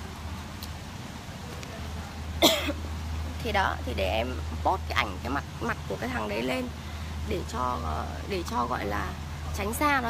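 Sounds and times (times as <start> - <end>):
woman coughing: 2.4 - 2.8.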